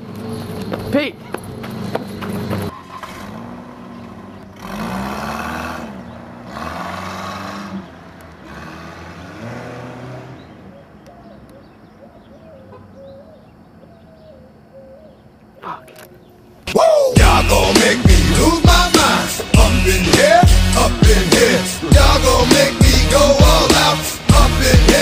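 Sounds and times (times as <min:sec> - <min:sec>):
car engine accelerating: 0:00.0 - 0:11.6, 0:16.7 - 0:25.0
road noise: 0:00.0 - 0:25.0.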